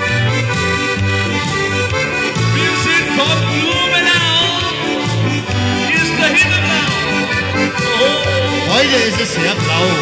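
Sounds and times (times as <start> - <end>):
accordion melody: 0.0 - 10.0
electric bass line: 0.0 - 10.0.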